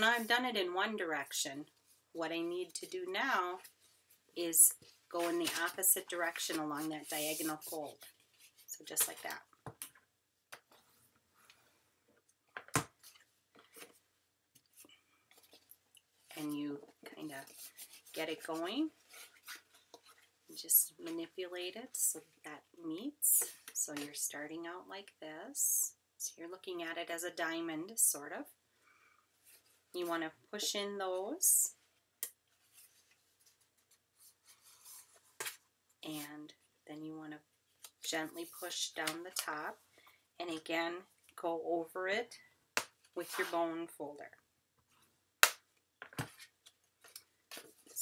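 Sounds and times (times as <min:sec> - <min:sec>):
paper rustling and scraping: 0:04.8 - 0:09.2, 0:17.3 - 0:20.3, 0:32.6 - 0:35.6, 0:43.2 - 0:43.6.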